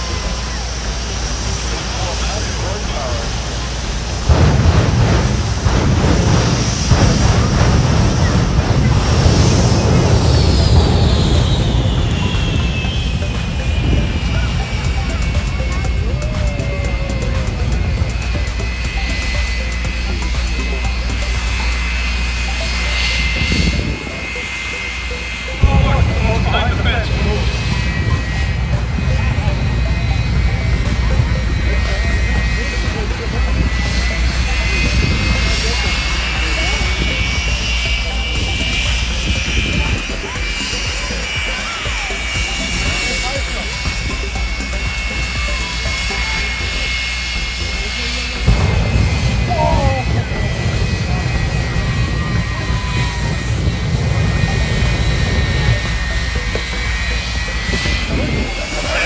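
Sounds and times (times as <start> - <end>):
jet engine turbine whine: 0.0 - 59.0.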